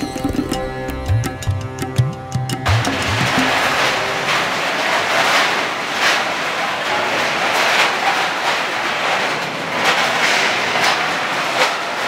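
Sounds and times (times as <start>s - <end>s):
sitar and tabla music: 0.0s - 4.4s
steel plates and bowls clattering: 2.6s - 12.0s.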